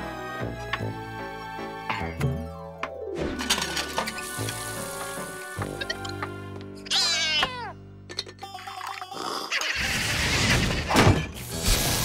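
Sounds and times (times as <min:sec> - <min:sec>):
cartoon cat yowling: 0:06.8 - 0:07.8.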